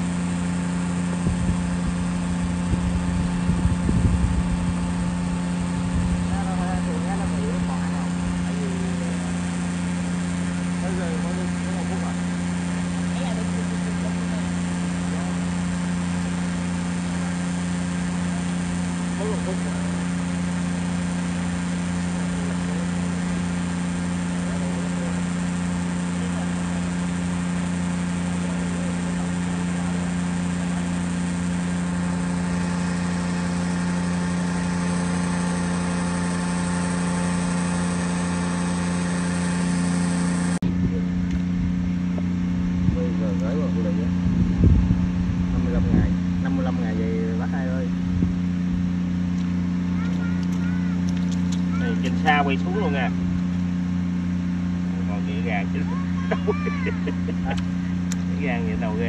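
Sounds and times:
motor humming: 0:00.0 - 0:59.0.

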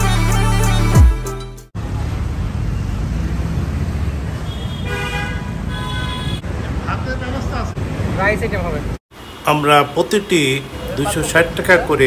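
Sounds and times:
vehicle horn honking: 0:04.5 - 0:06.4.

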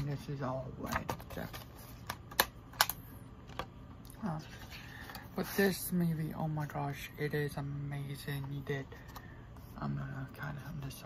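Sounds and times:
plastic disc case clicks: 0:00.8 - 0:03.7.

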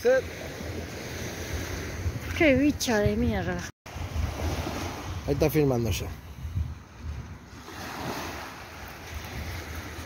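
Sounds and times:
wind rumble on microphone: 0:00.5 - 0:10.0
surf washing onto beach: 0:07.4 - 0:10.0.

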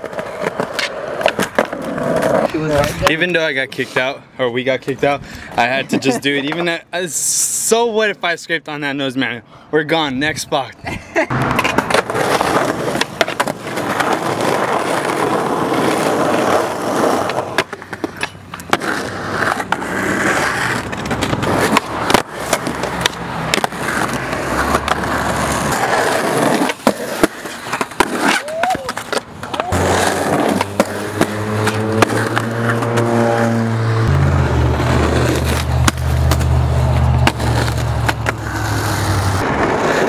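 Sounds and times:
skateboard clacks: 0:00.0 - 0:03.0, 0:11.3 - 0:33.1, 0:35.0 - 0:39.0
skateboard grinding on curb: 0:00.0 - 0:04.1, 0:11.3 - 0:40.0
skateboard wheels rolling on concrete: 0:00.0 - 0:08.5, 0:10.2 - 0:40.0.

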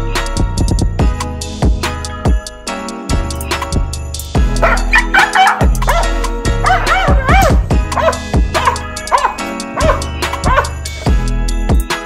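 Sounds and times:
background music with steady beat: 0:00.0 - 0:12.0
dog barking in high yips: 0:04.6 - 0:10.8.

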